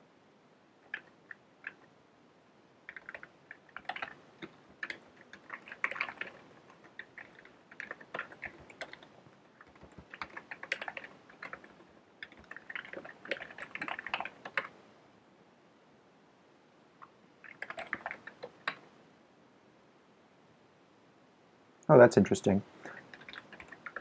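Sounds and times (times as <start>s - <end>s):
computer keyboard typing: 0.8s - 1.9s, 2.9s - 14.8s, 17.4s - 18.8s, 22.9s - 24.0s.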